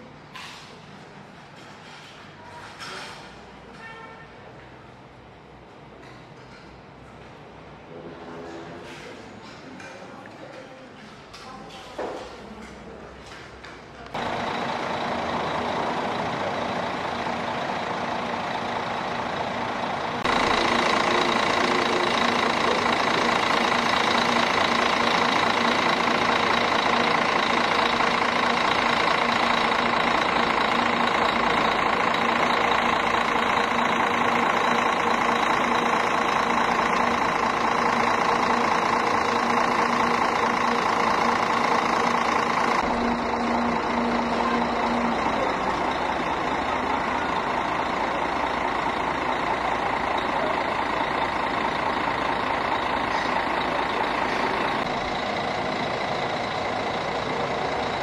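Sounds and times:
diesel engine idling: 13.8 - 58.0.

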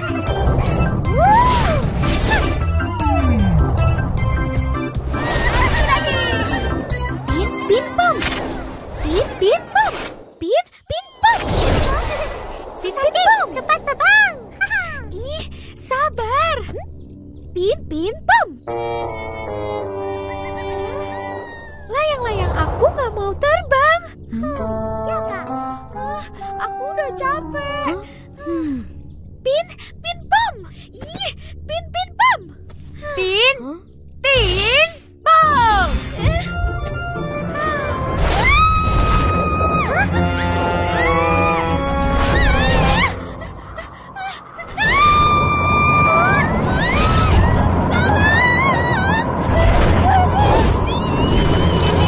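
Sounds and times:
girl screaming: 1.1 - 1.8, 21.2 - 22.0, 37.5 - 40.2, 40.8 - 43.2, 44.6 - 52.0
frightened cries: 20.9 - 21.9, 37.4 - 52.0.

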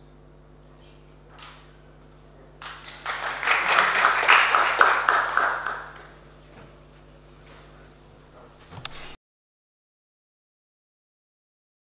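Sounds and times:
audience applauding: 2.6 - 6.2.

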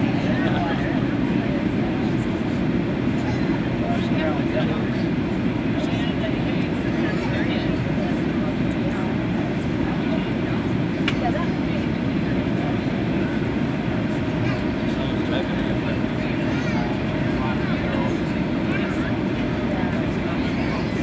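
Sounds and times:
aircraft cabin engine and airflow noise: 0.0 - 21.0
murmur of passenger voices: 0.0 - 21.0.

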